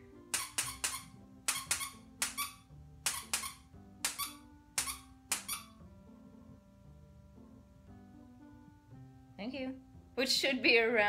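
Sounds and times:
faint background music: 0.0 - 11.0
squeaky clicks: 0.3 - 5.7.

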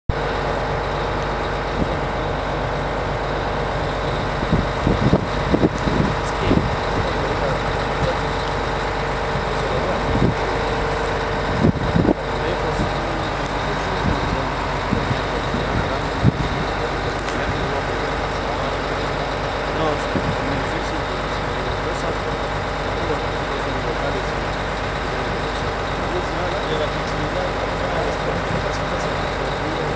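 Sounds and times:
bus engine idling: 0.1 - 29.9
interview voices: 4.9 - 24.5, 25.1 - 29.9.

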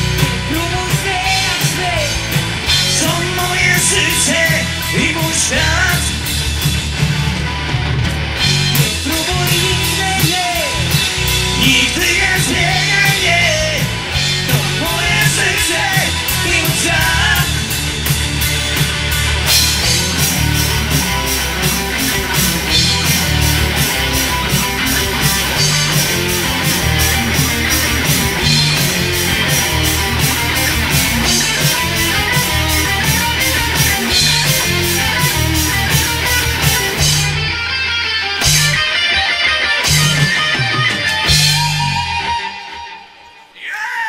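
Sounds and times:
rock band playing: 0.0 - 44.0
fast cymbal beat: 14.2 - 37.5.

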